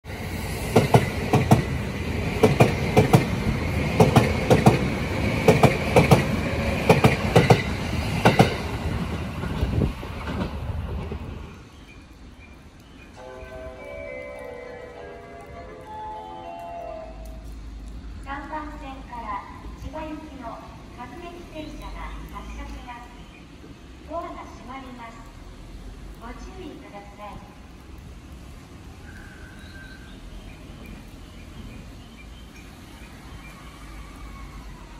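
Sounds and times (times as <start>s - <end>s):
electric train whine: 0.1s - 11.6s, 13.0s - 18.0s
train wheels clacking over rail joints: 0.7s - 8.7s.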